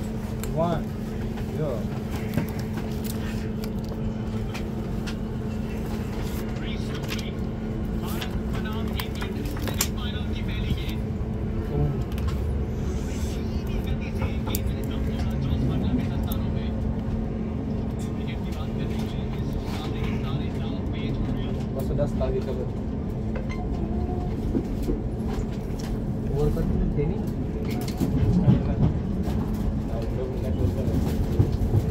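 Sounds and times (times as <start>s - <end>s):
constant hum: 0.0s - 31.9s
train running gear rumble: 0.0s - 31.9s.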